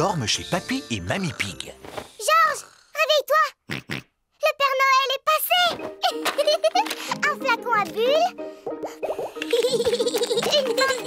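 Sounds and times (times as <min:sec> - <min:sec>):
high cartoon voice calling excitedly: 0:02.2 - 0:03.7.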